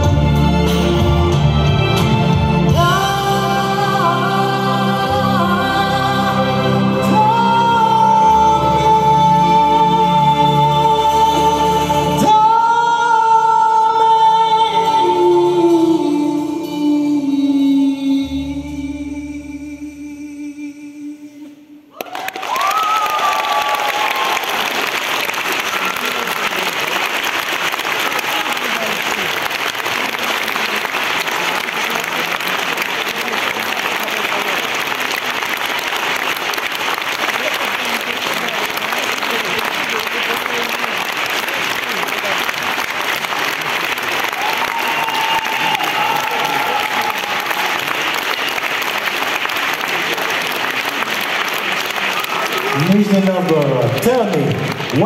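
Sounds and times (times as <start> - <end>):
audience applauding: 21.9 - 55.0.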